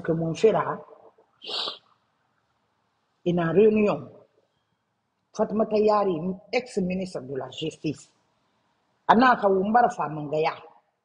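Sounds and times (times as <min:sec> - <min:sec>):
woman speaking: 0:00.0 - 0:00.8, 0:01.5 - 0:01.8, 0:03.3 - 0:04.1, 0:05.4 - 0:08.0, 0:09.1 - 0:10.6
breathy hiss from mouth: 0:01.4 - 0:01.8.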